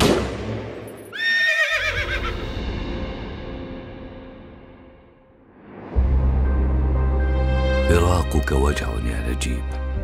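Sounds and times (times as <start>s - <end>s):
gunshot: 0.0s - 0.8s
horse whinnying: 1.1s - 2.5s.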